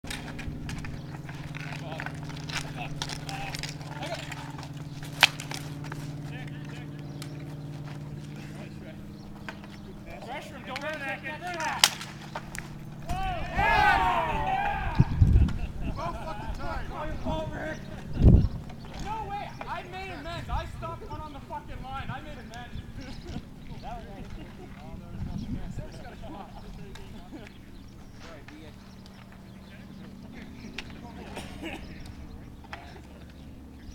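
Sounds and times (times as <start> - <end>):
distant voices talking: 0.0 - 33.9
steady low hum: 0.0 - 33.9
hockey sticks clacking on ball: 0.1 - 8.4, 9.4 - 13.2
distant players calling out: 0.2 - 33.9.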